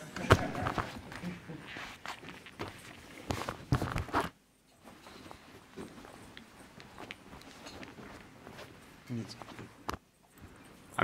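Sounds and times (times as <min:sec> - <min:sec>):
microphone handling rustles: 0:00.2 - 0:10.6.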